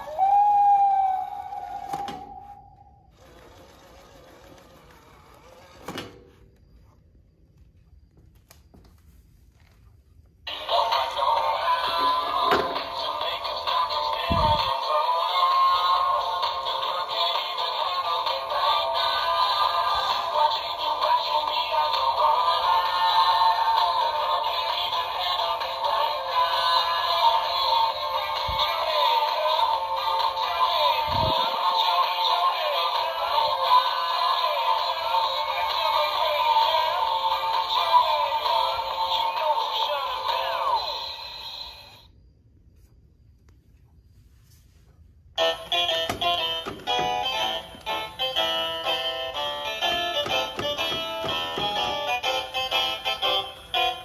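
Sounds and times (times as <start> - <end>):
tinny toy song with synthetic voice: 10.5 - 42.1, 45.4 - 54.0.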